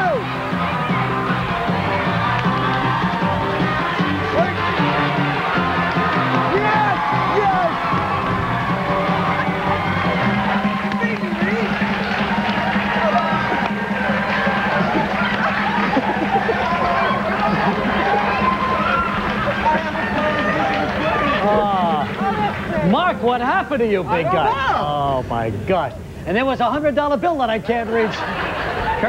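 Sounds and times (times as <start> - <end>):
audience cheering and shouting: 0.0 - 25.3
music playing: 0.0 - 25.7.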